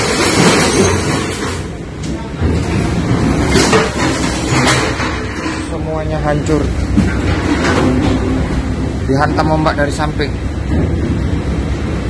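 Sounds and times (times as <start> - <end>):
low rumble of ship and sea: 0.0 - 12.0
loose objects knocking and clattering: 2.4 - 8.6.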